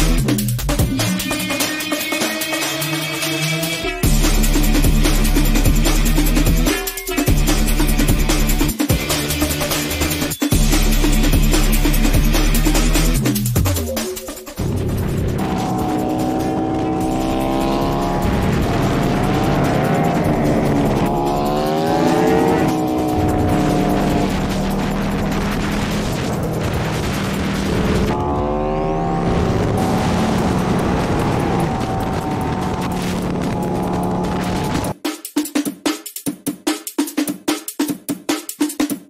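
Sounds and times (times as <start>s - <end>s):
motorcycle engine accelerating: 14.6s - 34.9s
wind rush: 18.0s - 34.9s.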